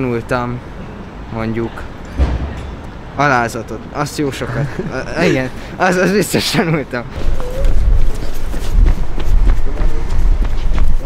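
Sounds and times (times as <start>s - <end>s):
hurried footsteps on pavement: 7.2s - 11.0s.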